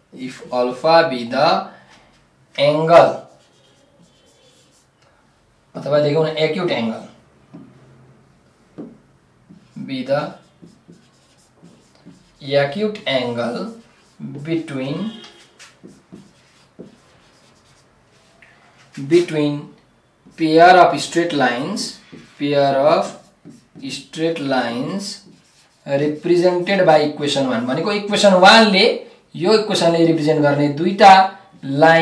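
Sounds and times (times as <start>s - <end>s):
marker writing on whiteboard: 2.1s - 5.0s, 6.8s - 7.9s, 8.5s - 19.4s, 20.0s - 27.6s.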